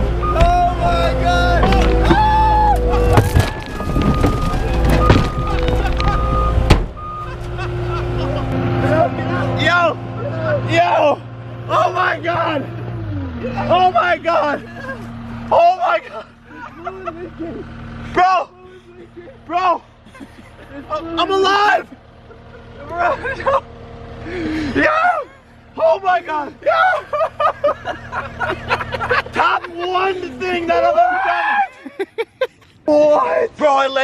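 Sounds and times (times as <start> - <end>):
car crunching impacts: 0.0 - 9.2
diesel engine working hard: 0.0 - 34.0
excited shouting: 0.2 - 3.2, 7.3 - 19.9, 20.8 - 22.0, 24.7 - 32.2, 32.9 - 34.0.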